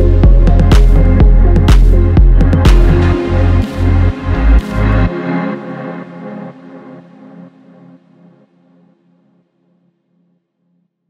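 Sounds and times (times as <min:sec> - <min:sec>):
lo-fi house music: 0:00.0 - 0:09.2.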